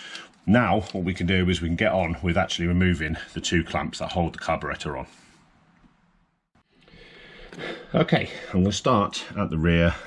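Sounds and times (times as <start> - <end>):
faint room noise hiss: 0.0 - 10.0
person breathing in: 6.8 - 8.5.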